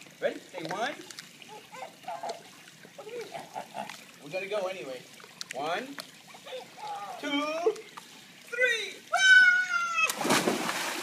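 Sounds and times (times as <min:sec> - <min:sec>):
toddler whimpering: 0:01.5 - 0:02.4, 0:06.4 - 0:07.2.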